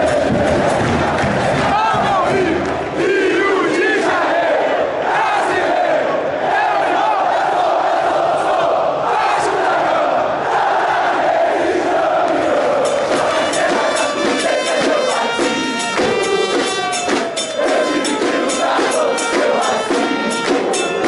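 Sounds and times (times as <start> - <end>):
football supporters chanting: 0.0 - 21.0.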